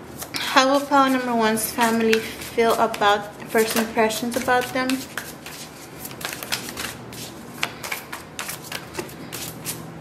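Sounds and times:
cards being shuffled by hand: 0.1 - 9.9.

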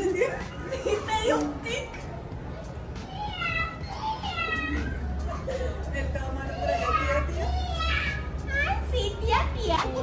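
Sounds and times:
childlike voices chattering: 0.6 - 10.0.

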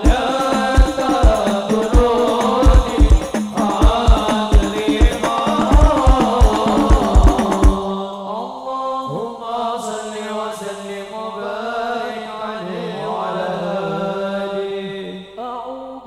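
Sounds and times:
men singing a chant through a pa: 0.0 - 16.0.

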